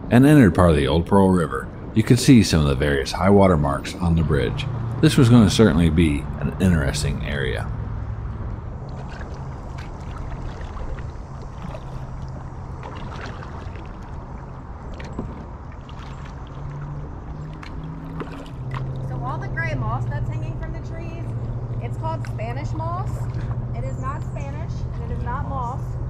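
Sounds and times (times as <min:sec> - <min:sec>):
steady low hum: 0:00.0 - 0:26.0
person speaking: 0:00.1 - 0:07.7
paddle splashing and dripping: 0:08.1 - 0:19.5, 0:21.4 - 0:23.8.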